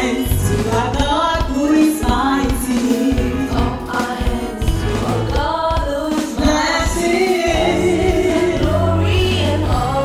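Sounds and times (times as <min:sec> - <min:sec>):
steady bass line: 0:00.0 - 0:01.4, 0:06.5 - 0:10.0
instrumental accompaniment: 0:00.0 - 0:10.0
women singing gospel song: 0:00.0 - 0:10.0.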